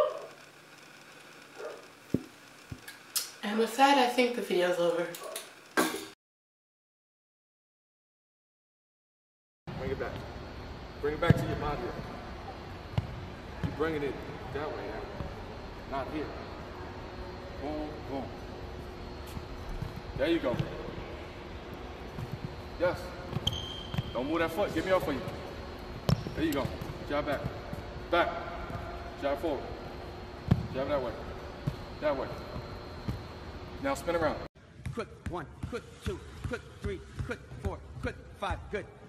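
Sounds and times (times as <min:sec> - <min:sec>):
basketball bouncing on hardwood floor: 0:26.1 - 0:27.7, 0:30.5 - 0:30.7.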